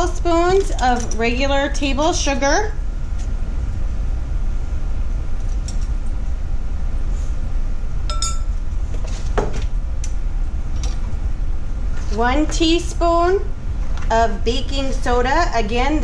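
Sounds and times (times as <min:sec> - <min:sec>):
steady low hum: 0:00.0 - 0:16.0
metal spoon clinking against glass: 0:08.1 - 0:08.5.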